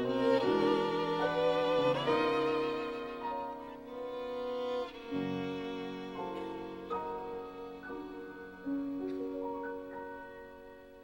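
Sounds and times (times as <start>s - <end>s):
solo violin playing slow notes: 0.0s - 10.9s.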